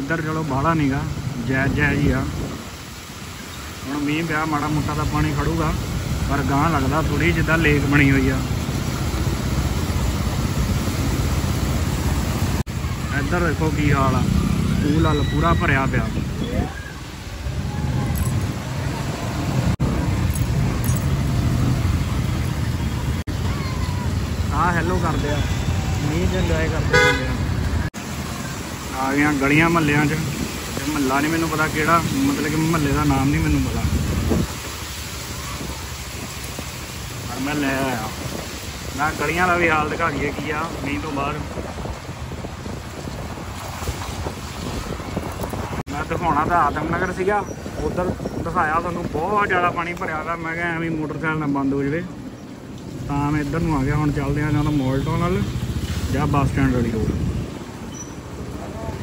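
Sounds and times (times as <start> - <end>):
road traffic noise: 0.0 - 59.0
wind rushing over microphone: 1.0 - 3.1, 5.6 - 24.5, 29.3 - 51.0, 52.1 - 59.0.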